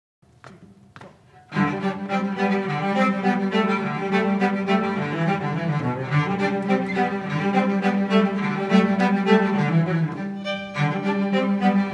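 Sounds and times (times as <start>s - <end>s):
soft taps: 0.4s - 1.3s
cellos playing a tune: 1.3s - 11.9s.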